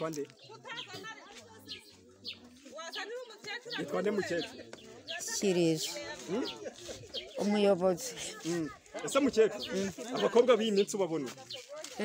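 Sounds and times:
woman speaking: 0:05.1 - 0:06.5, 0:07.4 - 0:08.8.

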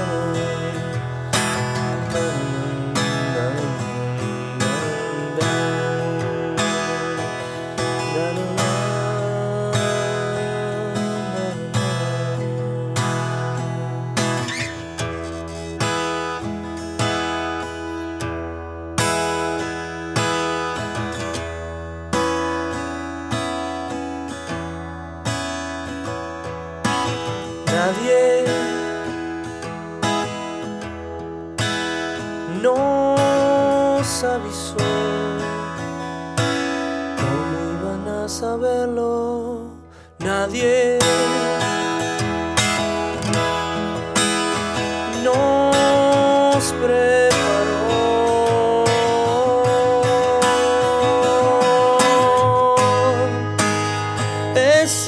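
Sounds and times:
sliding bent guitar notes: 0:00.0 - 0:22.8, 0:40.2 - 0:55.0
strummed acoustic guitar: 0:00.0 - 0:55.0.

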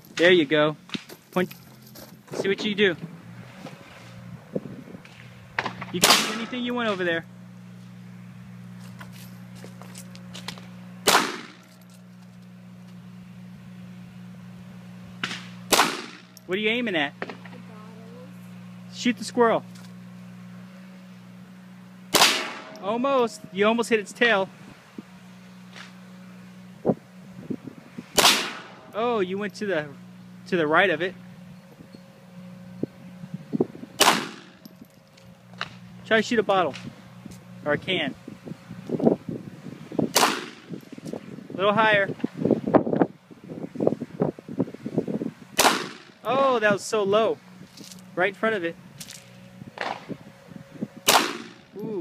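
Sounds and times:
steady low hum: 0:00.0 - 0:52.0
pistol shot with echo: 0:06.0 - 0:06.6, 0:11.1 - 0:11.6, 0:15.3 - 0:16.2, 0:22.1 - 0:22.8, 0:28.2 - 0:28.7, 0:34.0 - 0:34.4, 0:40.1 - 0:40.6, 0:45.6 - 0:46.0, 0:51.1 - 0:51.6.

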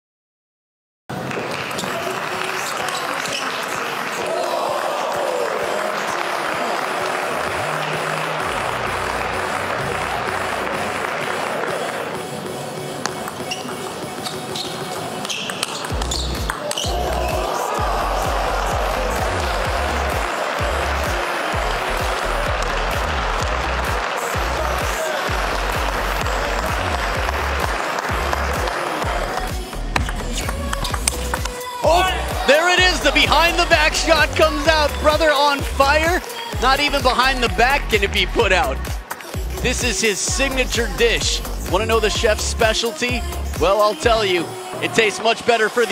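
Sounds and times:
arena crowd noise: 0:01.1 - 0:45.9
background music with low beat: 0:07.2 - 0:45.4.

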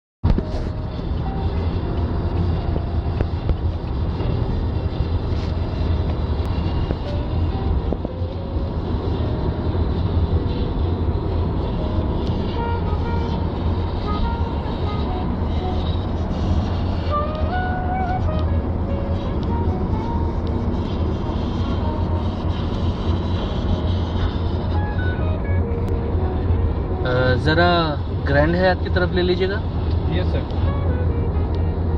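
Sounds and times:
road and engine rumble in car: 0:00.2 - 0:31.9.

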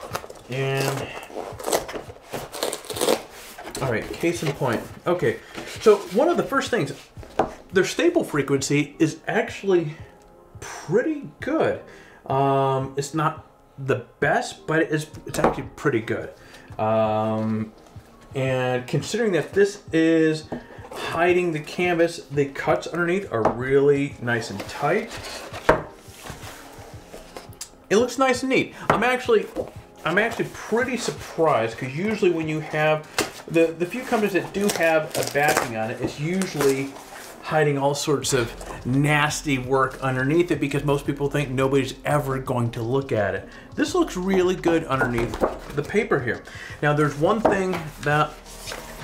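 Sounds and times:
paper backing peeling and rustling: 0:00.0 - 0:07.1, 0:24.3 - 0:27.7, 0:29.0 - 0:43.3, 0:43.9 - 0:49.0.

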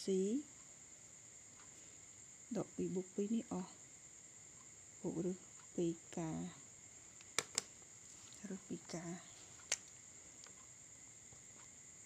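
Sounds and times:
crickets droning: 0:00.0 - 0:12.0
person speaking: 0:08.2 - 0:09.9.

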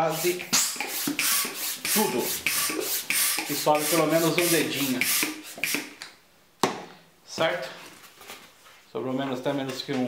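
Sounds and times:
balloon pump airy strokes: 0:00.0 - 0:06.0.

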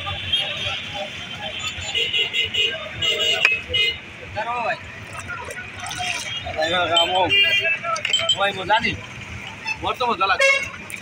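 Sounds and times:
chatter of people: 0:00.0 - 0:10.9
traffic noise: 0:00.0 - 0:11.0.

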